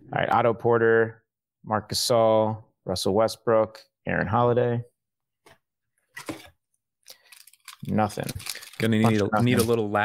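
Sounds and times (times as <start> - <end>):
papery rustle of card wrapper: 7.1 - 9.8.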